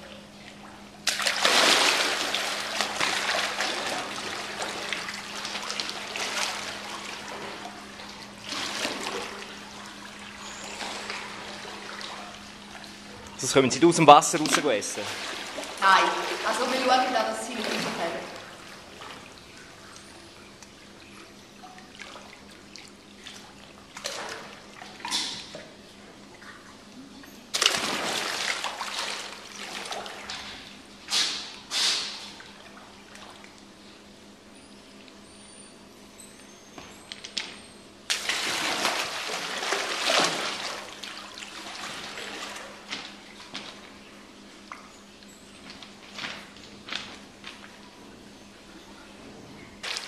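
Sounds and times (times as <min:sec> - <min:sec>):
alligator splashing in water: 0:01.0 - 0:13.0, 0:27.5 - 0:32.3, 0:38.1 - 0:43.3.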